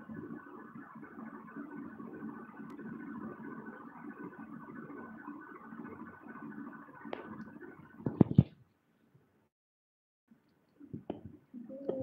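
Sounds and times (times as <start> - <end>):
faint hum: 0.0 - 9.5.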